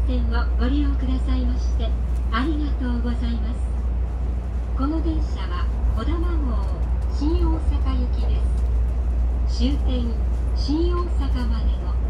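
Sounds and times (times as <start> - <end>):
woman's announcement voice: 0.0 - 3.8, 4.8 - 8.6, 9.4 - 12.0
train interior hum: 0.0 - 12.0.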